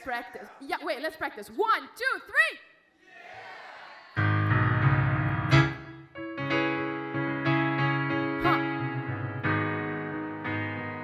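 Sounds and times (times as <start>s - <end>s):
grand piano chords: 4.2s - 11.0s.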